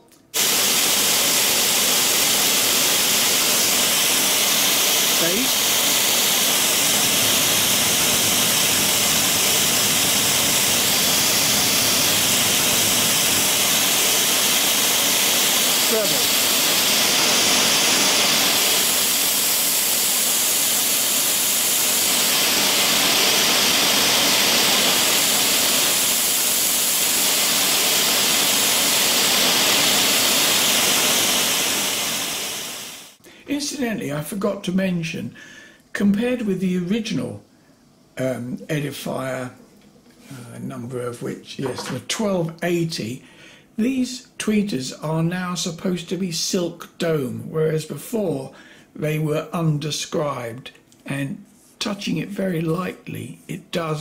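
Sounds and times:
white noise hiss from speaker: 0.0 - 54.0.

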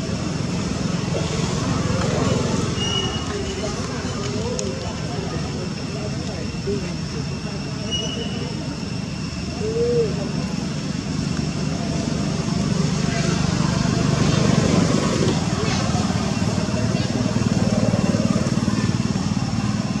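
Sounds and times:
small engine running: 0.0 - 20.0.

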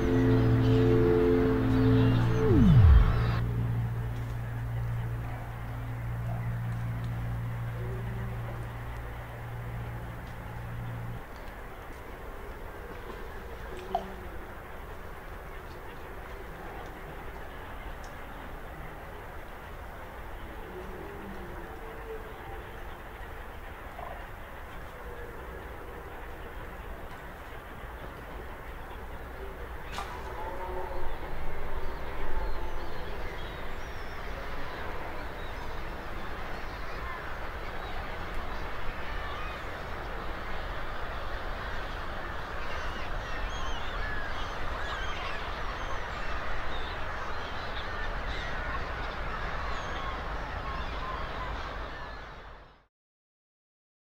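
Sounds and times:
low outdoor rumble: 0.0 - 52.3
chorus of waterbirds calling: 4.8 - 52.8.

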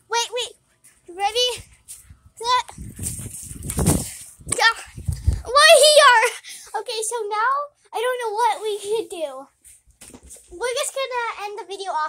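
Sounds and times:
phone microphone handling noise: 2.0 - 5.5.

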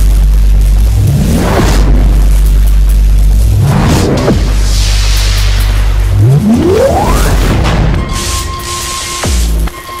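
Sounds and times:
deep bass rumble: 0.0 - 8.6.

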